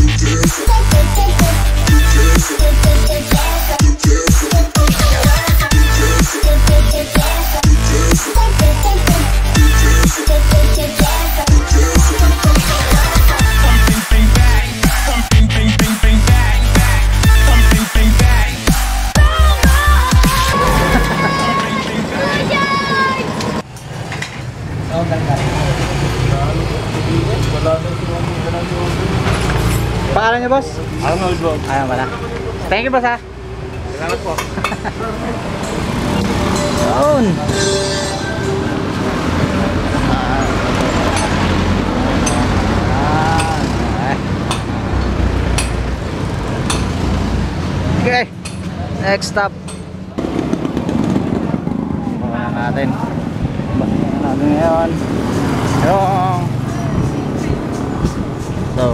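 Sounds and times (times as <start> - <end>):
street traffic passing: 0.0 - 58.9
children's voices: 20.3 - 23.6.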